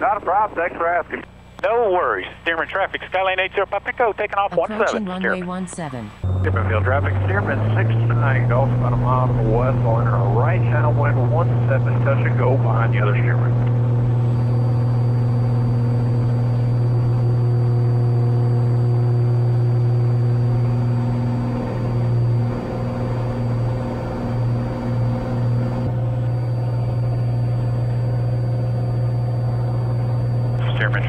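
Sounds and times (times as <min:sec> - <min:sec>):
propeller plane engine drone: 0:00.0 - 0:05.0, 0:06.1 - 0:31.0
radio voice: 0:00.0 - 0:13.6, 0:30.6 - 0:31.0.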